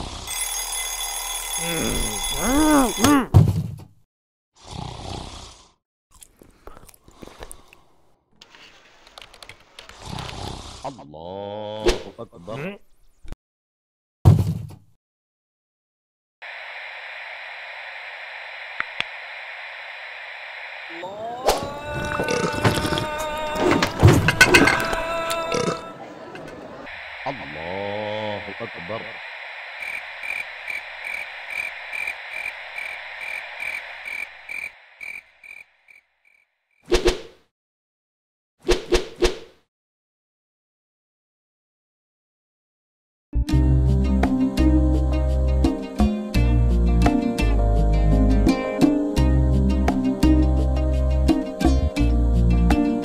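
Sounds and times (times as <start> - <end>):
alarm clock bell ringing: 0.3 - 3.2
voice groaning: 1.6 - 3.3, 20.9 - 26.1
background music: 43.4 - 53.0.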